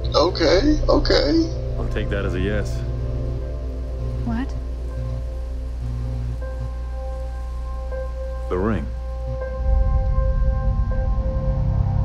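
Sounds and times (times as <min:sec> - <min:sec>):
low rumbling drone: 0:00.0 - 0:12.0.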